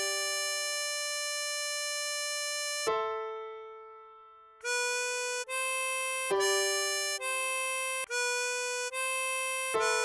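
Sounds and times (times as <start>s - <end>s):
harmonica long note: 0.0s - 2.8s, 4.6s - 10.0s.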